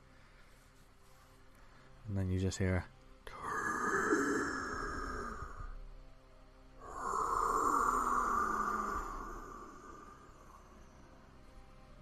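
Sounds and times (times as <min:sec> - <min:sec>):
woman sighing eerily: 0:03.3 - 0:05.8, 0:06.8 - 0:11.0.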